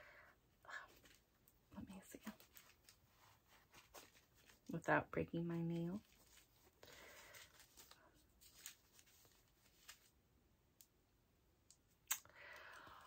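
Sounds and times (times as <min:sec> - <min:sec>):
packaging being opened: 0:06.0 - 0:10.1.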